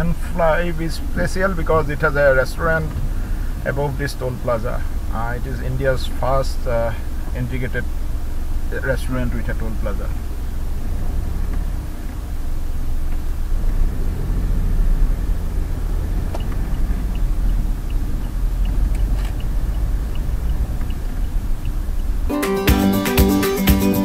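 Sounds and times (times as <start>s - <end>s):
diesel engine and tyres rumbling: 0.0s - 22.3s
faint light ticks: 16.3s - 22.1s.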